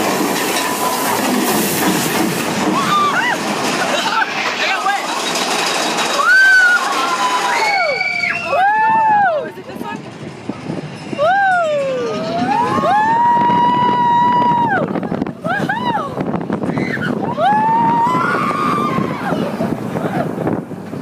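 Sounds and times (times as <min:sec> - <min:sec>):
roller coaster ride noise: 0:00.0 - 0:21.0
riders yelling and screaming: 0:06.1 - 0:09.5, 0:11.2 - 0:20.5.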